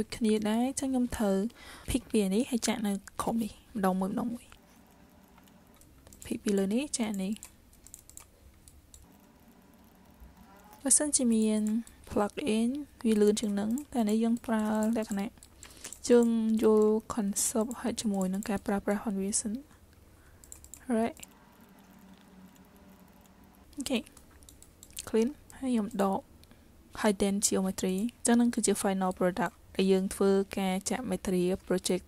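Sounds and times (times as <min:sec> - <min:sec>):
person speaking: 0:00.0 - 0:04.8, 0:05.8 - 0:07.5, 0:10.0 - 0:19.7, 0:20.7 - 0:24.2, 0:24.9 - 0:26.2
computer keyboard and mouse clicks: 0:04.5 - 0:10.1, 0:13.0 - 0:18.7, 0:20.4 - 0:25.6.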